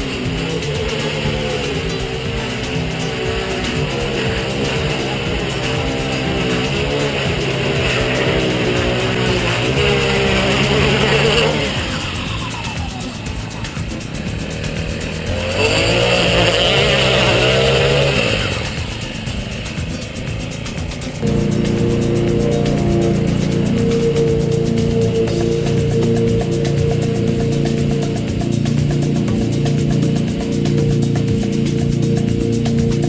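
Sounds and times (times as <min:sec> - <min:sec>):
lawn edger engine running: 0:00.0 - 0:33.0.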